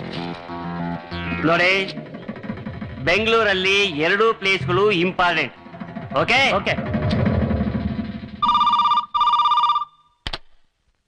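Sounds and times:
low rumbling score: 0:00.0 - 0:09.0
telephone ringing: 0:08.4 - 0:10.2.

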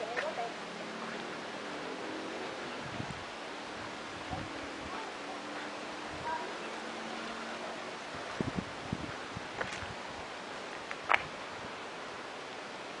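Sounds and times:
outdoor street background noise: 0:00.0 - 0:13.0.

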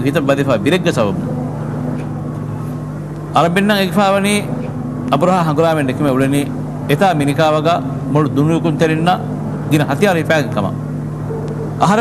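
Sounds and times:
steady low hum: 0:00.0 - 0:12.0
man speaking: 0:05.2 - 0:10.8.

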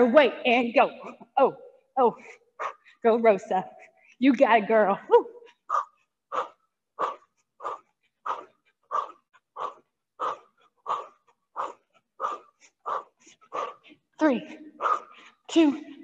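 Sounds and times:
woman breathing hard: 0:05.5 - 0:16.0.

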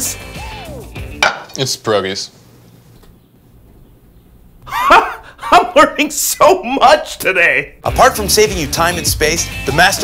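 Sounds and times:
man shouting loudly: 0:09.1 - 0:10.0.

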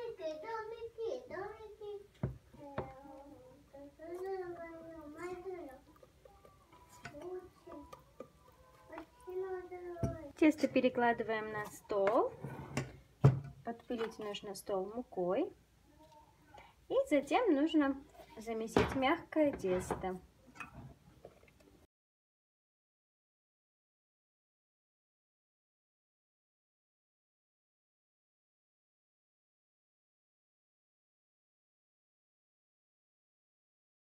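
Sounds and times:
child's voice: 0:00.0 - 0:10.4, 0:15.8 - 0:16.6.

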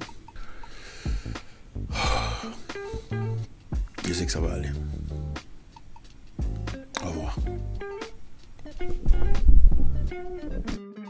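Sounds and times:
man taking loud breath: 0:00.2 - 0:03.2
soft music with plucked guitar: 0:02.2 - 0:11.0.

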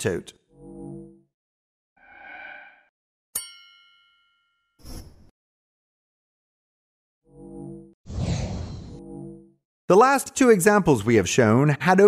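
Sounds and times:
bright bell-like ding: 0:03.4 - 0:04.6.

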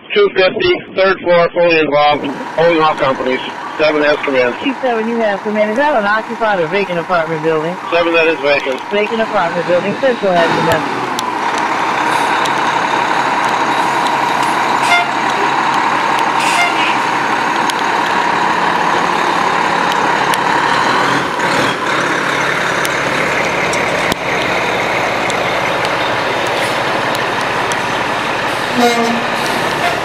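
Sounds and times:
diesel engines droning: 0:02.0 - 0:30.0.

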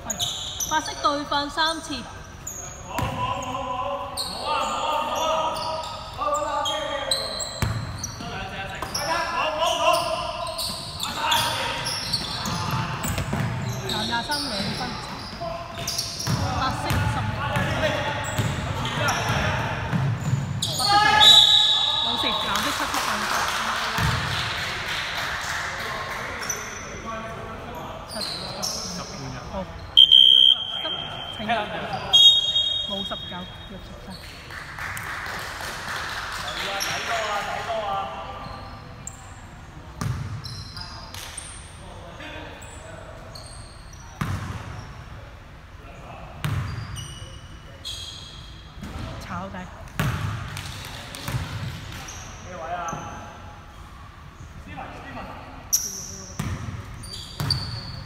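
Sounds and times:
basketball bouncing: 0:07.6 - 0:07.9, 0:15.8 - 0:17.8, 0:18.4 - 0:20.5, 0:24.0 - 0:24.2, 0:50.0 - 0:50.7
players calling out: 0:28.1 - 0:33.8.

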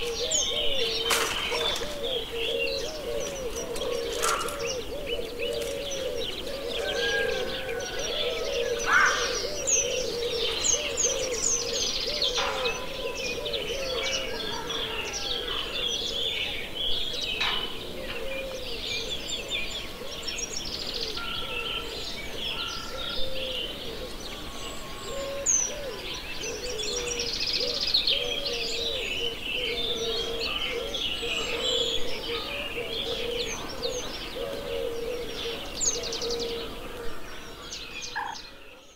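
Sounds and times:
dense bird chorus: 0:00.0 - 0:38.9
low repeated bird notes: 0:00.0 - 0:38.9.

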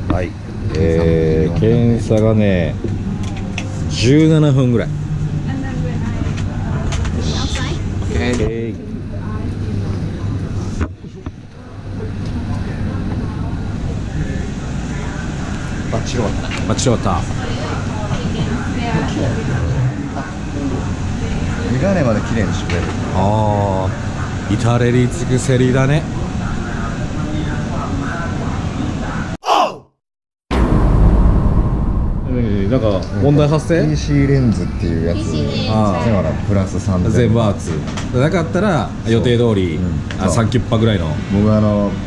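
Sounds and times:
shop interior background noise: 0:00.0 - 0:29.5, 0:33.0 - 0:42.0
low hum: 0:30.5 - 0:34.4.

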